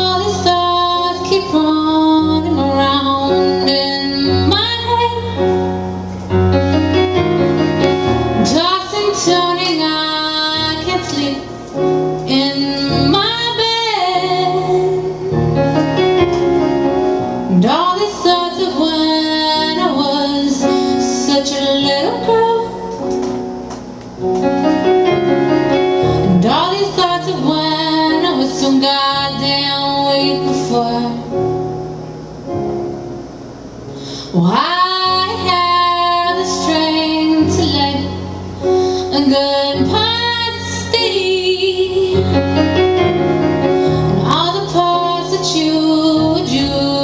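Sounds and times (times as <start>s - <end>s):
woman singing: 0.0s - 5.6s, 8.4s - 15.5s, 17.5s - 23.1s, 26.3s - 31.4s, 34.3s - 38.4s, 39.0s - 42.6s, 44.1s - 47.0s
electronic keyboard chords: 0.0s - 47.0s.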